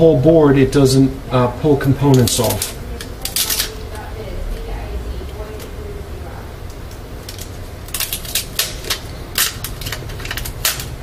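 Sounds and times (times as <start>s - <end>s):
low steady hum: 0.0s - 11.0s
sticker peeling crackles: 1.8s - 4.0s, 6.6s - 11.0s.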